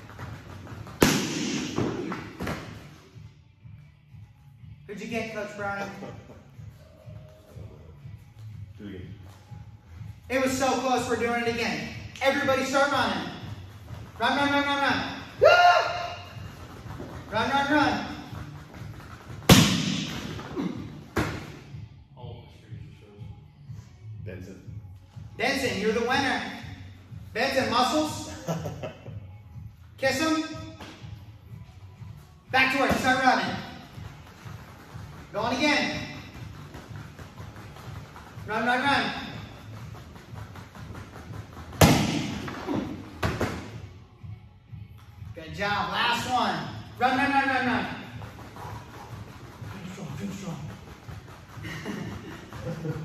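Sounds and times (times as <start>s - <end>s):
sharp smack: 1.0s - 2.6s, 19.5s - 20.4s, 41.8s - 42.6s.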